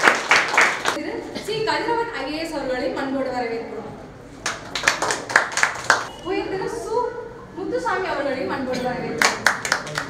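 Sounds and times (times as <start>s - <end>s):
people clapping: 0.0s - 1.0s, 4.4s - 6.1s, 9.2s - 10.0s.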